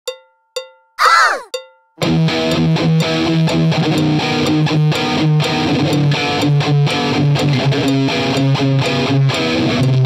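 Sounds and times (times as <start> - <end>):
cowbell-like click track: 0.1 - 10.0.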